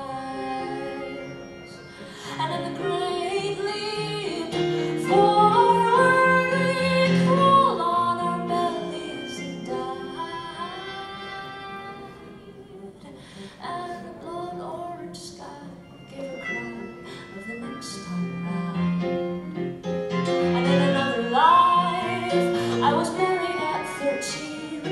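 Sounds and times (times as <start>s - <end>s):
woman singing: 0.0s - 19.8s, 20.4s - 24.9s
grand piano: 0.0s - 24.9s.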